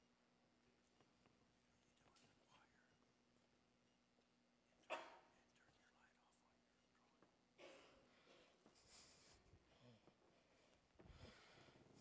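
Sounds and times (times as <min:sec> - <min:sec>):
faint whisper: 0:00.7 - 0:03.2, 0:04.6 - 0:07.8.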